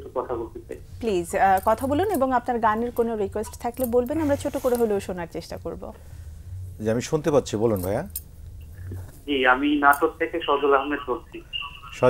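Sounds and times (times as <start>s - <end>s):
person speaking over a telephone: 9.3s - 12.0s.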